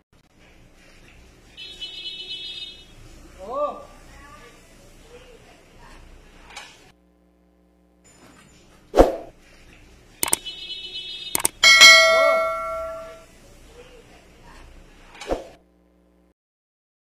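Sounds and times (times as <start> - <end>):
quick clicks: 10.2 - 10.5, 11.4 - 11.6
bright bell ding: 11.6 - 13.2.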